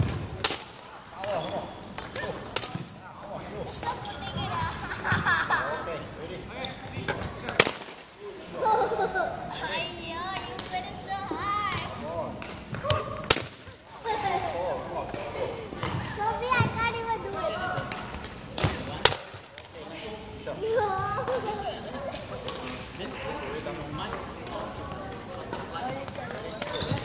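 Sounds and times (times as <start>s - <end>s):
children's voices calling: 3.7s - 6.0s, 8.4s - 12.0s, 16.0s - 18.2s, 20.5s - 22.7s.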